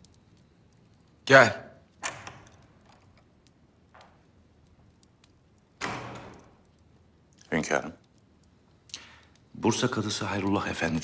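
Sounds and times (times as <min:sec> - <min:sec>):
door shutting with a thud: 0:05.8 - 0:06.5.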